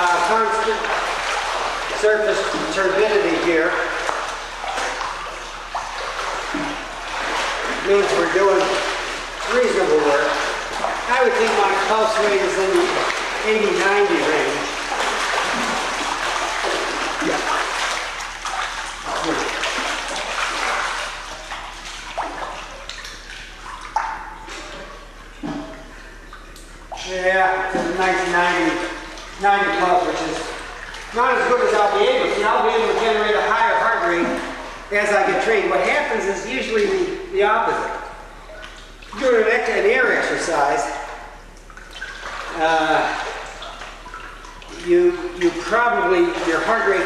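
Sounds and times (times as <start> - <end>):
person talking: 0.0 - 1.0, 1.9 - 4.0, 7.7 - 14.8, 27.0 - 38.0, 39.2 - 41.1, 42.5 - 43.5, 44.7 - 47.0
pool water splashing: 0.0 - 47.0.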